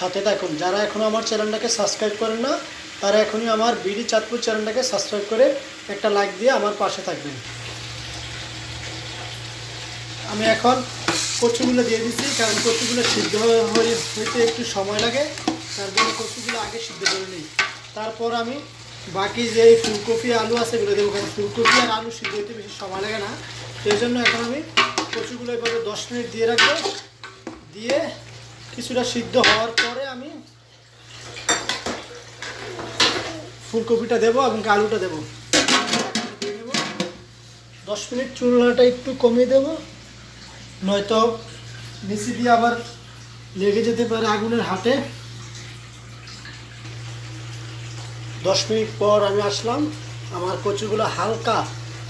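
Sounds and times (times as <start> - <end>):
gravy sizzling in a pot: 0.0 - 52.0.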